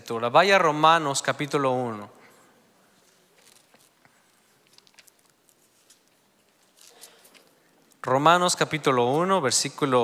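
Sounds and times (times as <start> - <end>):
pages rustling: 3.0 - 7.6.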